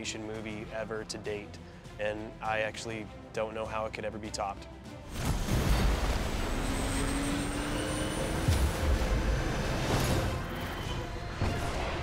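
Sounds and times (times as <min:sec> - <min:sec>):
jet engine spooling up: 0:05.7 - 0:11.3.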